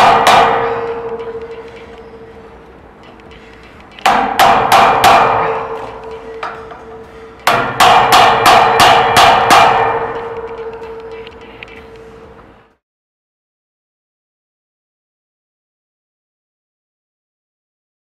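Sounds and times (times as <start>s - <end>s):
hammer striking metal: 0.0s - 12.5s.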